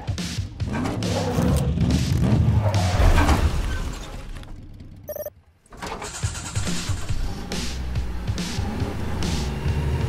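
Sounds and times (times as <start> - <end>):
electronic beep: 5.1 - 5.3
car engine cranking: 5.6 - 9.5.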